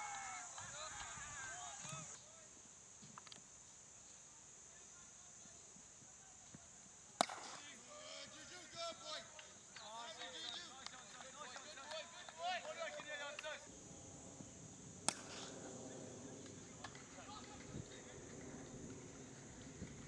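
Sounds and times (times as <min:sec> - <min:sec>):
players shouting: 0:00.0 - 0:02.2
cricket bat striking ball: 0:07.2 - 0:07.7, 0:15.0 - 0:15.8.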